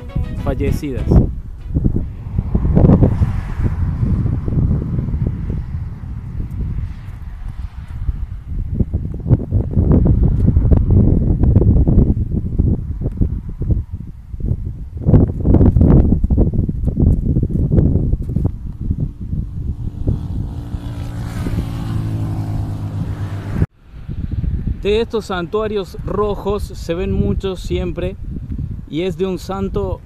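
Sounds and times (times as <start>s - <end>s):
wind buffeting microphone: 0.0s - 30.0s
vehicle passing: 1.1s - 8.9s, 19.0s - 24.5s.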